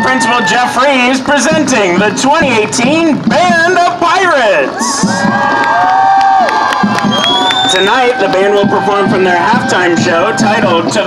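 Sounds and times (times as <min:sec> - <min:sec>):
people cheering and whooping: 0:00.0 - 0:01.9, 0:04.2 - 0:11.0.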